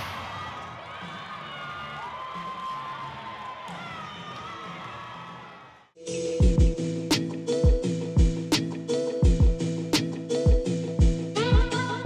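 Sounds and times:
crowd cheering and shouting: 0.0 - 6.0.

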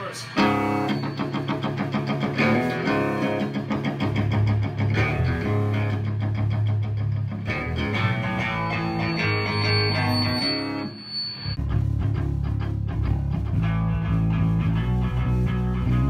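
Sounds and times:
steady high tone: 0.0 - 2.7, 7.7 - 11.6
electric guitar metal riff: 0.0 - 11.0, 11.6 - 16.0
heavy bass line: 0.4 - 10.4, 11.6 - 16.0.

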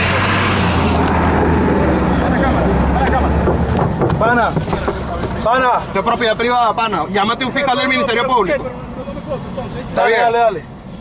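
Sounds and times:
car engine hum: 0.0 - 11.0
road noise: 0.0 - 11.0.

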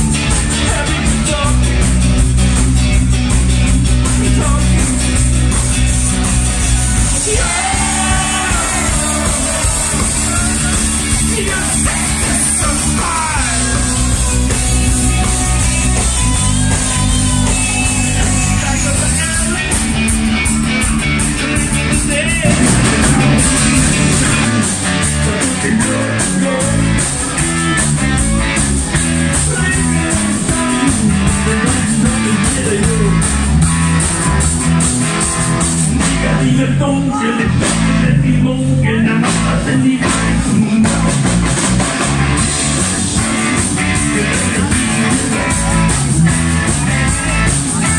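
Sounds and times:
drum beat: 0.0 - 18.6, 22.4 - 28.0
rock band playing: 0.0 - 47.9
man singing: 0.3 - 2.0, 2.8 - 5.2, 7.1 - 15.4, 18.1 - 20.2, 21.3 - 27.9, 29.0 - 33.5, 36.0 - 41.3, 43.8 - 46.2.

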